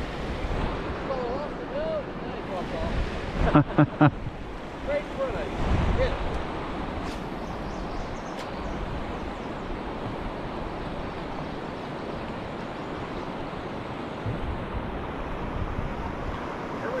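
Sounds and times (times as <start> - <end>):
river water rushing: 0.0 - 17.0
wind buffeting microphone: 0.0 - 17.0.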